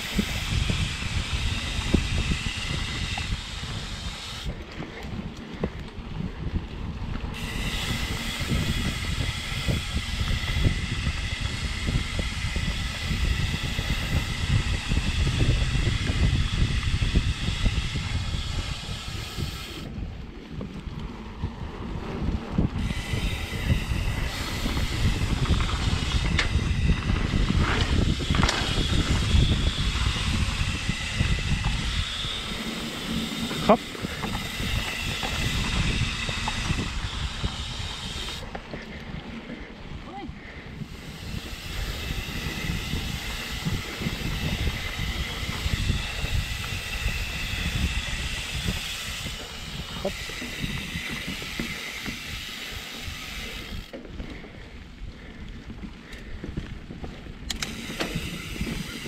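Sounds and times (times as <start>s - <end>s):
high whir of bike hub: 0.0s - 59.0s
wind buffeting microphone: 0.0s - 59.0s
clicks and knocks from bike: 4.5s - 7.8s, 24.6s - 29.3s, 55.4s - 59.0s.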